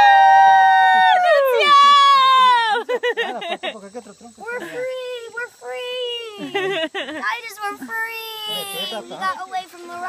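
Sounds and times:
bursts of laughter: 2.4 - 3.8, 6.4 - 7.2.

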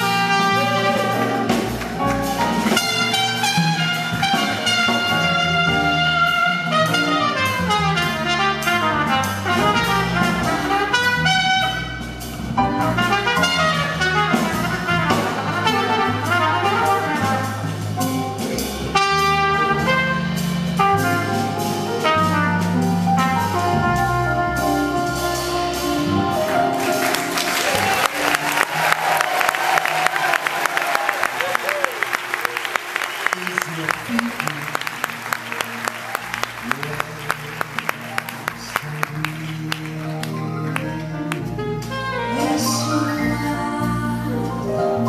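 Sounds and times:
jazz trumpet solo: 0.0 - 45.0.

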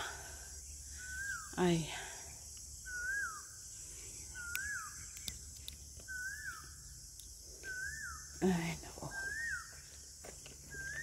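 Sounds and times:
sharp clicks: 4.5 - 6.1.

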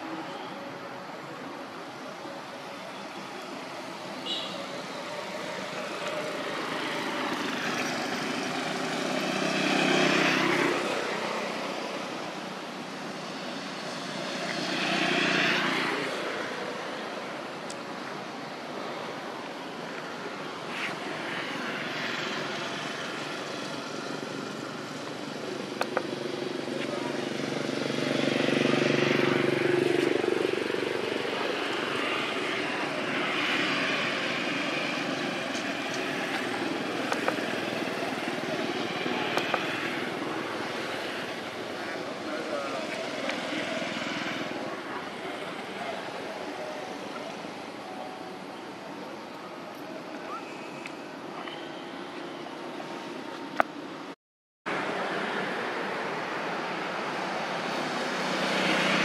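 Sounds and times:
distant propeller aircraft drone: 0.0 - 54.1
outdoor background noise: 0.0 - 59.0.

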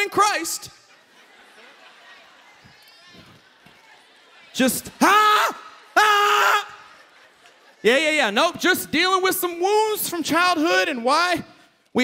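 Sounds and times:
audience laughing and murmuring: 0.0 - 8.9.

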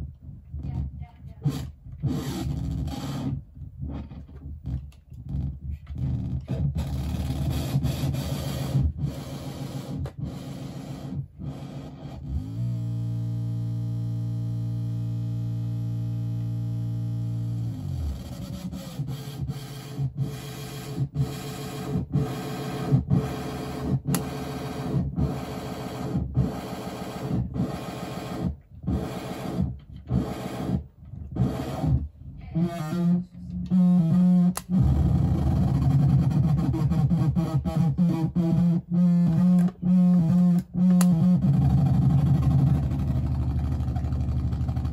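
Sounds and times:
steady buzzing drone: 6.8 - 44.9
distorted synthesizer pulses: 21.6 - 43.9
low hum: 39.2 - 44.9.

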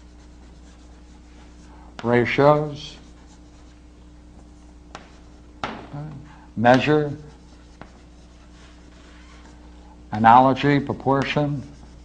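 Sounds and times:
chalk scratching on blackboard: 0.0 - 3.8, 6.7 - 9.8, 11.2 - 12.0
chalk tap: 4.9 - 5.9, 7.5 - 9.1, 11.2 - 12.0.

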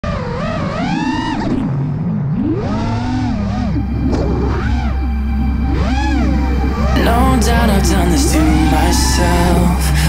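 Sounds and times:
quadcopter motors whining: 0.0 - 10.0
steady low hum: 0.0 - 10.0.

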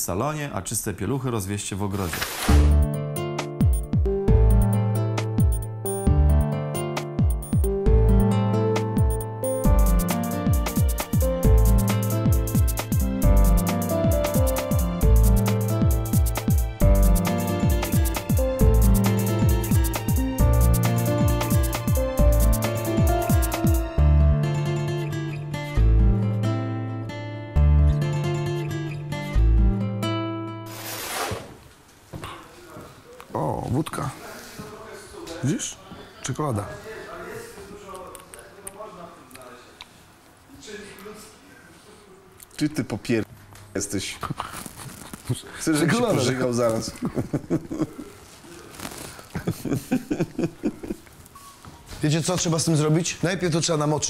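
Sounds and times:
plucked guitar-like music: 2.6 - 30.6
man laughing in short bursts: 46.9 - 48.2, 49.3 - 51.0.

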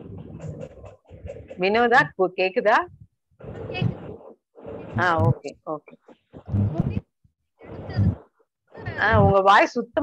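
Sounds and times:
person talking: 1.5 - 3.0, 4.8 - 7.1, 8.8 - 10.0.

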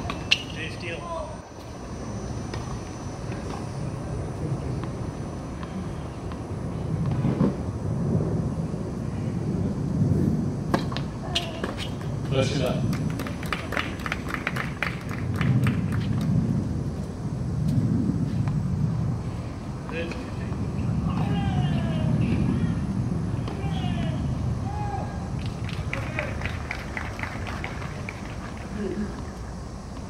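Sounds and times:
spectators applauding: 12.9 - 16.1, 25.4 - 29.0.

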